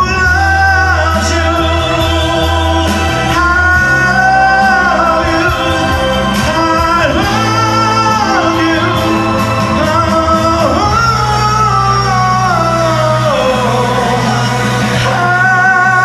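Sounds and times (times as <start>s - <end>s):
karaoke backing track: 0.0s - 16.0s
man singing a ballad: 0.0s - 16.0s.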